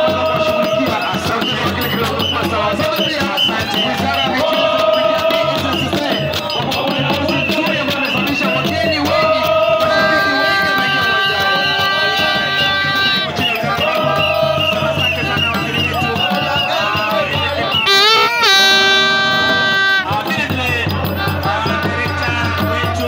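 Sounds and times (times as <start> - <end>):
crowd singing and shouting: 0.0 - 23.0
drums beaten fast: 0.0 - 23.0
long held pitched notes: 17.9 - 20.0.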